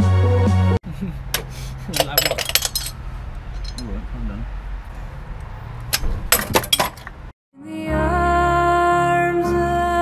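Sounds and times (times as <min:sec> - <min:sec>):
metal hand tools clinking: 0:01.9 - 0:03.9, 0:06.3 - 0:07.1.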